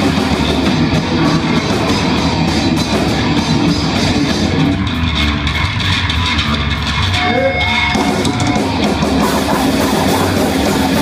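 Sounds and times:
bass guitar: 0:00.0 - 0:11.0
distorted electric guitar: 0:00.0 - 0:11.0.

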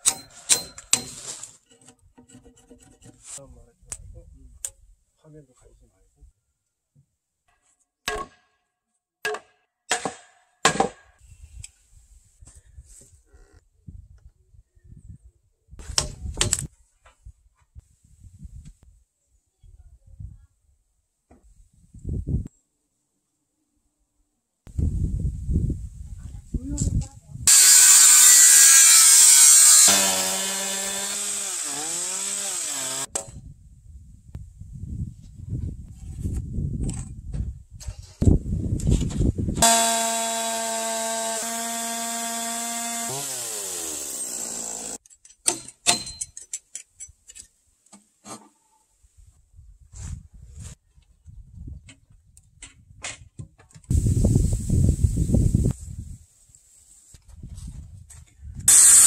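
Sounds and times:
chainsaw cutting timber: 0:27.5 - 0:33.1, 0:39.6 - 0:45.0, 0:58.7 - 0:59.0
power tool burst: 0:27.5 - 0:33.1, 0:39.6 - 0:45.0, 0:58.7 - 0:59.0.

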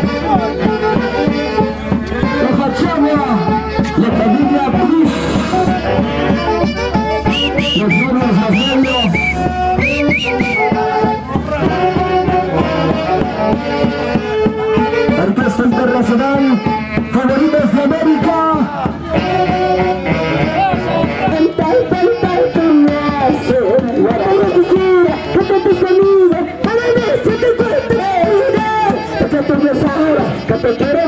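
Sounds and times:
folk band music: 0:00.0 - 0:31.0.

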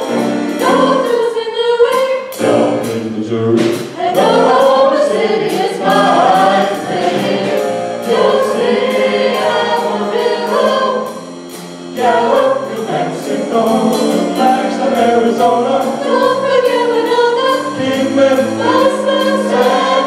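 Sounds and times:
sharp steady beat: 0:00.0 - 0:20.0
vocal ensemble singing in harmony: 0:00.0 - 0:20.0.

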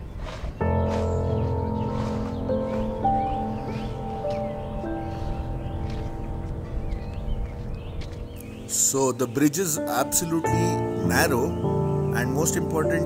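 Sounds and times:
slow held chords music: 0:00.6 - 0:13.0.

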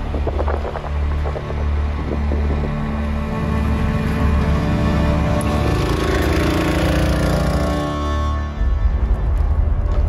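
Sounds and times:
background music with layered tones: 0:00.0 - 0:10.0.

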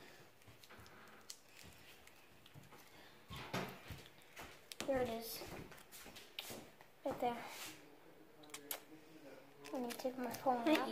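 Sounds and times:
plastic candy wrapper crinkling: 0:00.4 - 0:03.0, 0:09.5 - 0:10.9.

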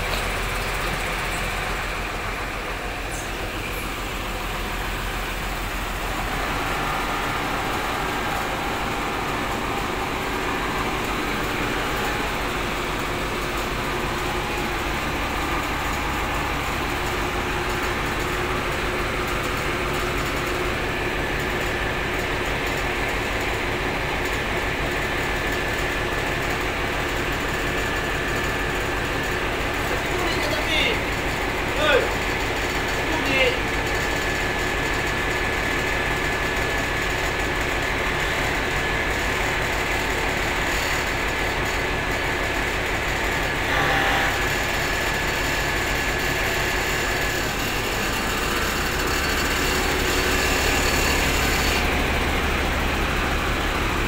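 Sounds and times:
diesel bus engine idling: 0:00.0 - 0:54.0.

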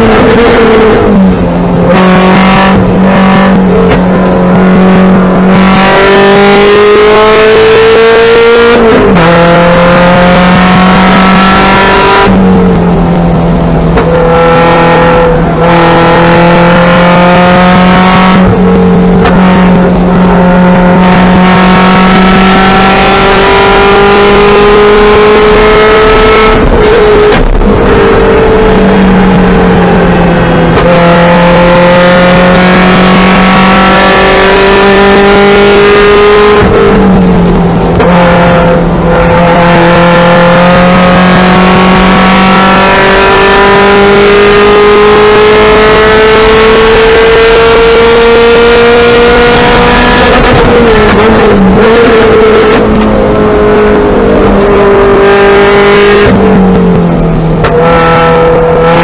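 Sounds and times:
car engine accelerating hard: 0:00.0 - 0:59.0.

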